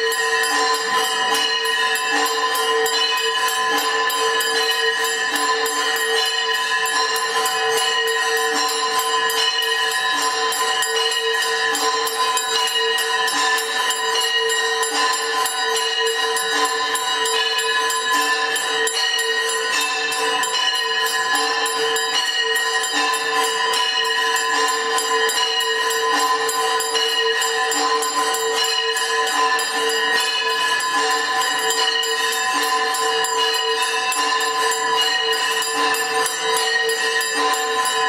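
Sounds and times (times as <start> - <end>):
bells ringing rapidly: 0.0 - 38.0.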